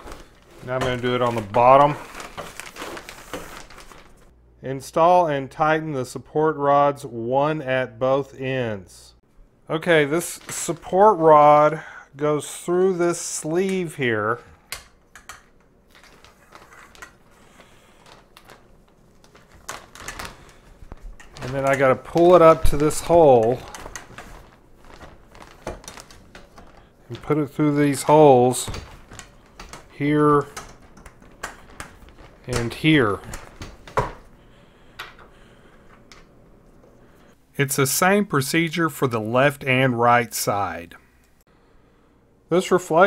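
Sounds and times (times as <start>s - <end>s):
cloth rustling: 0.0s - 4.3s, 15.7s - 37.4s.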